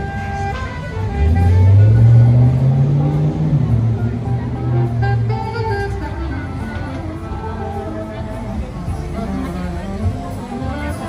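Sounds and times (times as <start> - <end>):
background music: 0.0 - 11.0
vehicle engine accelerating: 0.0 - 11.0.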